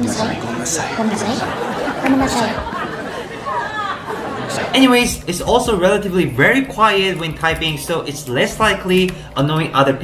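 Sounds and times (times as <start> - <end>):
several voices talking: 0.0 - 10.0.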